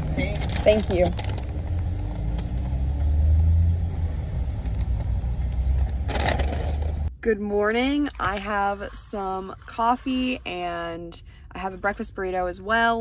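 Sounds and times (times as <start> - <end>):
car engine running: 0.0 - 7.1.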